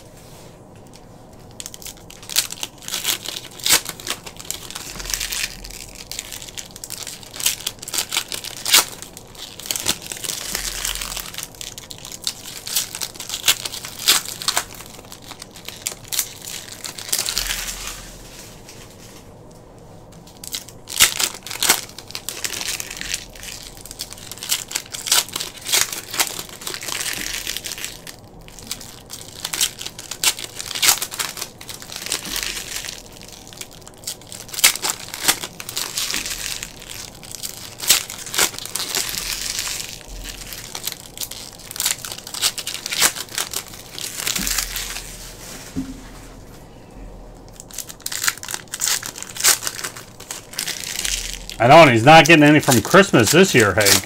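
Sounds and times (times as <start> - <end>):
plastic wrappers crinkling and tearing: 0.8 - 19.4, 20.0 - 45.8, 47.4 - 54.0.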